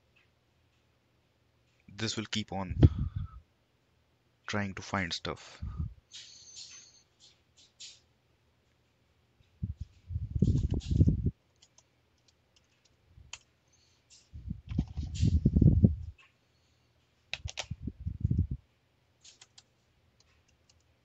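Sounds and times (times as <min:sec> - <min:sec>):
typing on computer keyboard: 0:11.5 - 0:13.5, 0:14.7 - 0:15.1, 0:17.3 - 0:17.8, 0:19.2 - 0:20.9.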